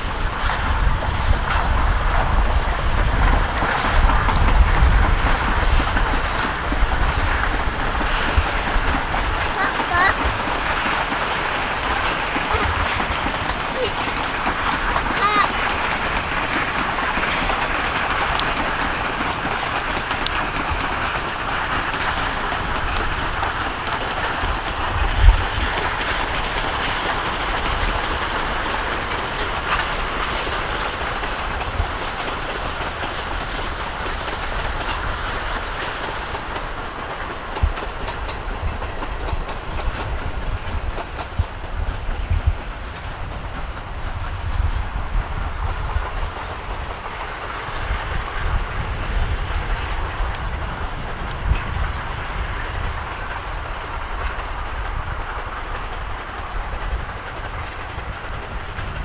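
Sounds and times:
steam locomotive exhaust: 0.0s - 59.0s
train running gear on rails: 0.0s - 59.0s
wheels rumbling on track: 0.0s - 59.0s.

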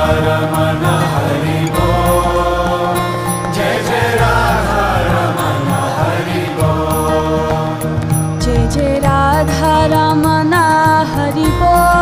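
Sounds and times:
low drone: 0.0s - 9.5s
held accompanying tones: 0.0s - 12.0s.

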